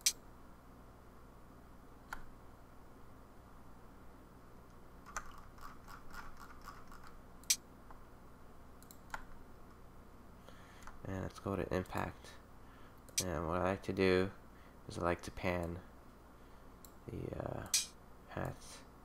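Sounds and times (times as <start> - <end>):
low steady hum: 0.0 - 19.0
computer mouse clicks: 2.1 - 2.3, 5.1 - 7.6, 8.8 - 9.4.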